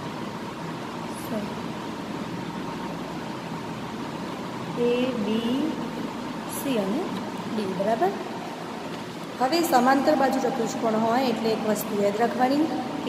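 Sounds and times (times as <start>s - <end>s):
steady background noise: 0.0s - 13.0s
person's voice: 4.8s - 5.8s.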